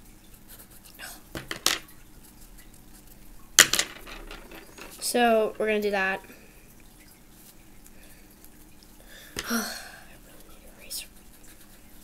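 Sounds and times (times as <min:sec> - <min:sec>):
knocks on a tabletop: 0:01.4 - 0:01.8.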